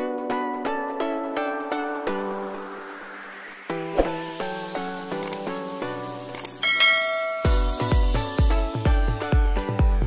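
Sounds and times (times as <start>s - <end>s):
bright bell chime: 6.6s - 8.2s.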